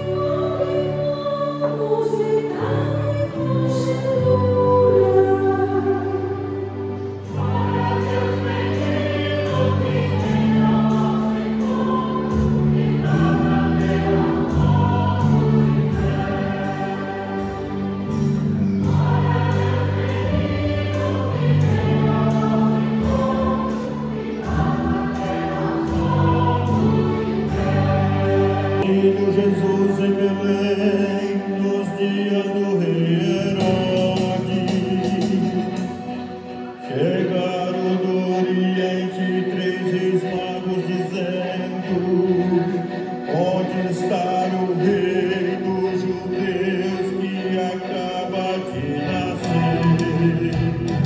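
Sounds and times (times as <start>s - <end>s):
woman singing slow song: 0.0s - 6.7s
choir singing slow music: 0.0s - 51.0s
instrumental accompaniment: 0.0s - 51.0s.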